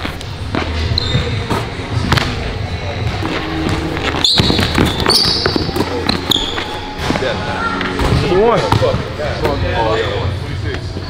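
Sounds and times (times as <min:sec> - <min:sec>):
sneakers squeaking: 0:00.0 - 0:09.6
voices in a hall: 0:00.2 - 0:11.0.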